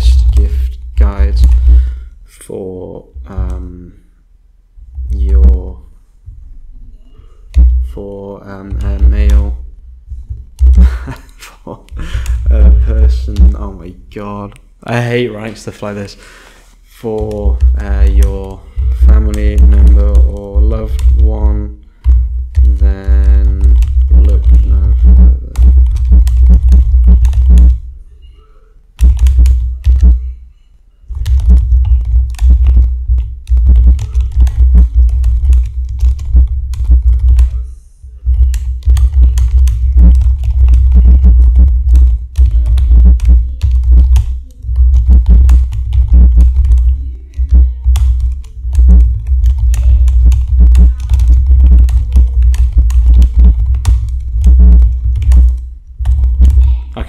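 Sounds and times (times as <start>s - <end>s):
computer keyboard typing: 0.0s - 2.0s, 7.4s - 13.9s, 17.1s - 27.8s, 29.0s - 30.4s, 31.1s - 56.8s.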